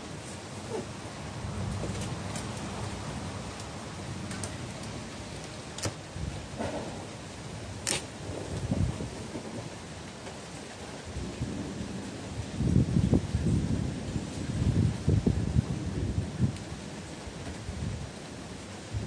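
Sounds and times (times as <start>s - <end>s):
steady hiss of rain: 0.0s - 19.0s
thunder rumbling: 0.6s - 10.1s, 11.1s - 18.1s.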